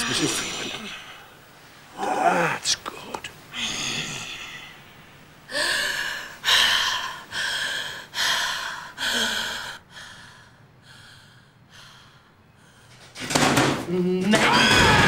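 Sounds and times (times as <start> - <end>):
woman breathing hard: 5.5 - 13.1.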